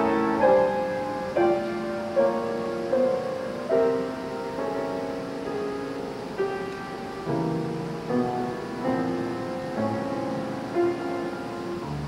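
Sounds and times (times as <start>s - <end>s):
grand piano chords: 0.0s - 12.0s.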